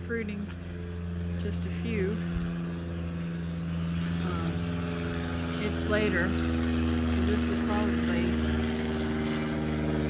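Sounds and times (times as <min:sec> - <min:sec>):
machine humming steadily: 0:00.0 - 0:10.0.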